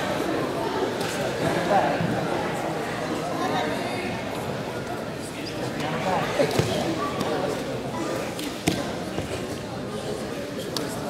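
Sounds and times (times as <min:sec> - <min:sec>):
indistinct voices in echoing gym: 0:00.0 - 0:11.0.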